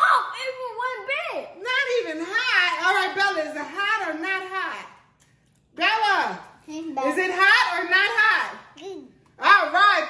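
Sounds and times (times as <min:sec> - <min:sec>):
children talking: 0:00.0 - 0:01.6
woman talking: 0:01.6 - 0:05.0, 0:05.8 - 0:08.7, 0:09.4 - 0:10.0.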